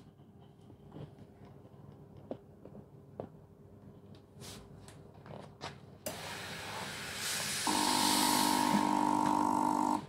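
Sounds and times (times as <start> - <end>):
steam cleaner hissing: 6.1 - 10.0
pump buzzing: 7.6 - 10.0.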